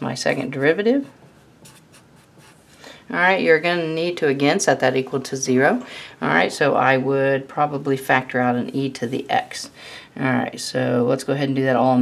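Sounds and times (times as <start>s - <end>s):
marker writing on paper: 1.2s - 2.7s.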